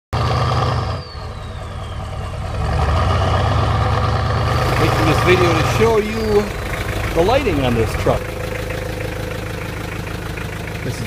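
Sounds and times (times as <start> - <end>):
diesel engine idling: 0.2 - 11.0
faint whistle sliding down: 0.8 - 2.5.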